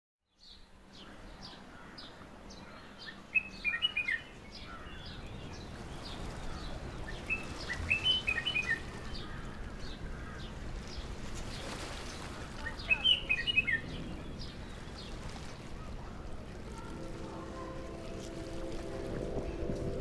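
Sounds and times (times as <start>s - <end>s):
birds chirping: 0.3s - 20.0s
steady background noise: 0.7s - 20.0s.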